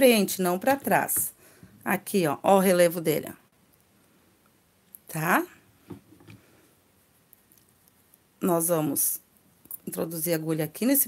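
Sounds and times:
faint soft sounds: 0.4 - 10.0.

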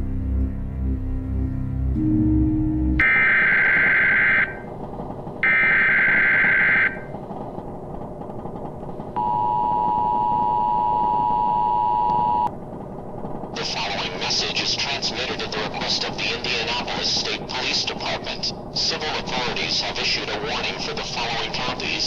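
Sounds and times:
warbling data tones: 3.0 - 4.7, 5.4 - 7.2
two-tone attention signal: 9.2 - 12.5.

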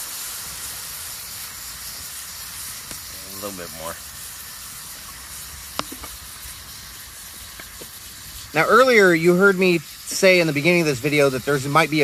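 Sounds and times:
sharp popping: 0.0 - 11.7
steaks sizzling in a skillet: 0.0 - 12.0.

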